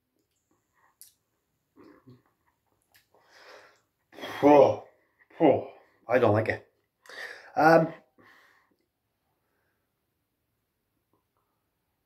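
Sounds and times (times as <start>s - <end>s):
faint mouth sounds: 1.8s - 3.2s
soft breath: 3.2s - 4.4s.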